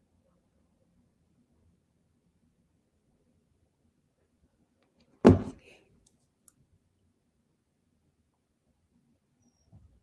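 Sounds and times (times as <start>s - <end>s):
sudden loud knock: 5.2s - 5.6s.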